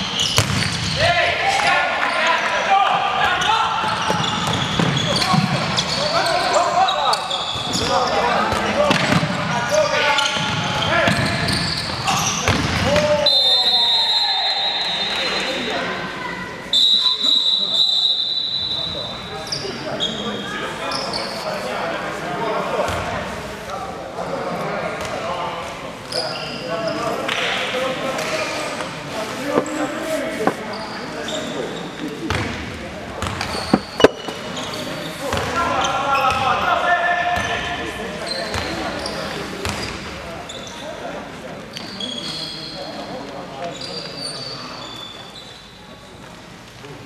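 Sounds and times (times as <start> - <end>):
ball bouncing on wooden court: 0.2 - 1.0
sharp ball impacts: 0.3 - 1.0
short high squeaks: 33.5 - 35.2.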